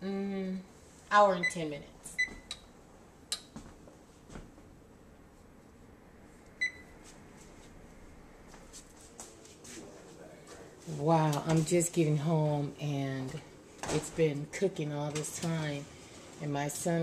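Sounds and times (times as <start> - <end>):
oven control panel beep: 6.6 - 6.9.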